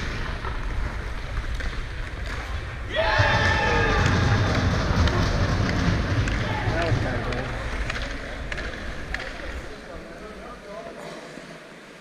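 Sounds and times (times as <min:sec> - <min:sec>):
hockey sticks clacking: 0:00.0 - 0:11.6
skates scraping on ice: 0:00.0 - 0:11.8.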